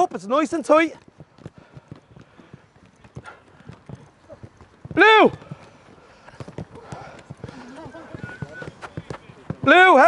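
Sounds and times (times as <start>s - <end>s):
running footsteps: 0.0s - 10.0s
footballs bouncing on turf: 0.5s - 10.0s
faint voices calling: 2.0s - 10.0s.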